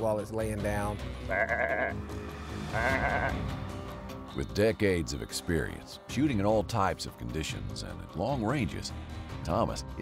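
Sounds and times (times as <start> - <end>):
background music: 0.0 - 10.0
sheep bleating: 1.1 - 2.1, 2.7 - 3.6.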